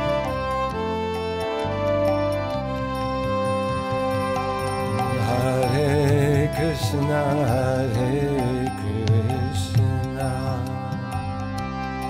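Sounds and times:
person chanting ornamented melody: 0.0 - 1.2, 3.7 - 11.4
steady drone: 0.0 - 12.0.

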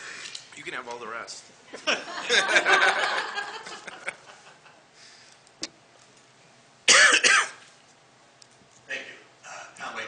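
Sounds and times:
person clearing throat: 6.9 - 7.6.

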